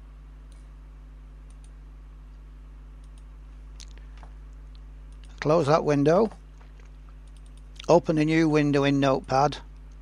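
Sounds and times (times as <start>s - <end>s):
low electrical hum: 0.0s - 10.0s
computer mouse clicks: 0.5s - 0.7s, 1.4s - 1.8s, 3.0s - 4.0s, 6.7s - 8.0s.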